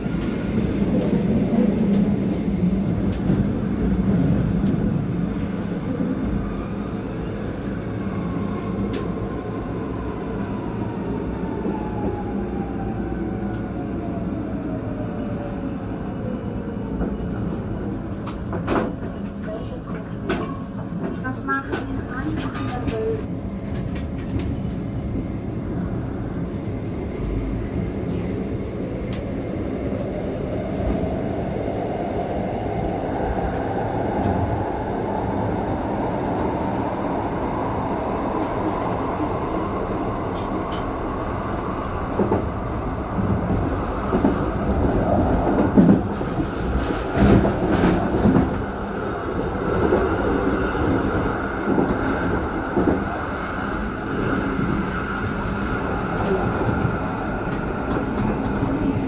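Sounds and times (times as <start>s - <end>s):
train wheel rumble: 0.0s - 14.2s, 16.2s - 59.0s.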